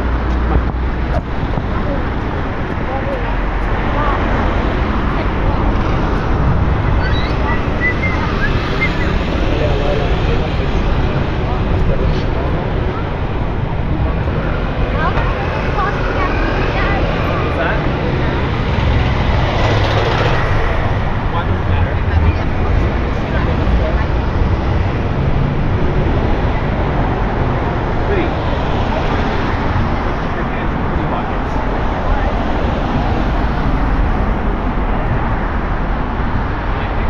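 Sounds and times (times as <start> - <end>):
passers-by talking: 0.0 - 37.0
passing cars traffic: 0.0 - 37.0.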